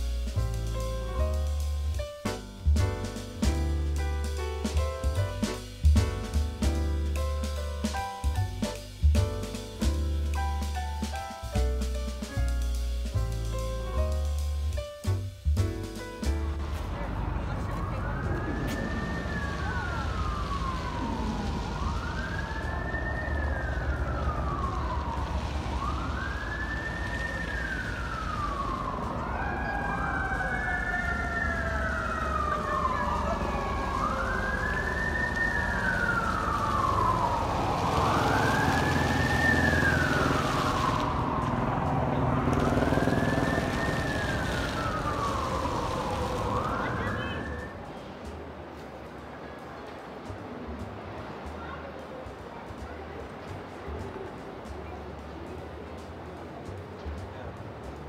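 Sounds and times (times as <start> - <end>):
emergency vehicle siren wailing: 16.6 - 48.3
second siren: 16.8 - 48.1.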